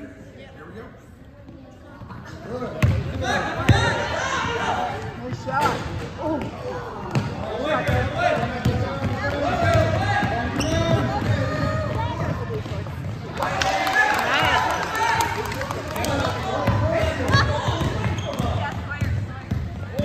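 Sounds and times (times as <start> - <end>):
voices of players and onlookers: 0.0 - 20.0
basketball bouncing on hardwood floor: 7.9 - 13.2.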